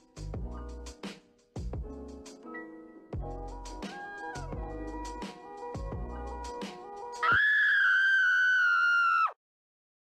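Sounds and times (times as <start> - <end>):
music: 0.0 - 7.3.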